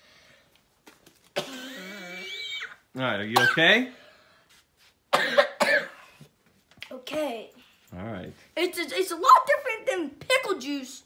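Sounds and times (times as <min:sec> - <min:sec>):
boy coughing: 0:01.4 - 0:02.8, 0:03.4 - 0:03.8, 0:05.1 - 0:06.2.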